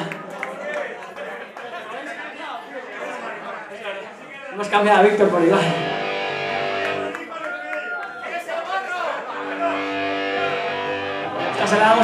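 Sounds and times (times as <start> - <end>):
electric guitar sustained notes: 5.7 - 7.1, 9.3 - 12.0.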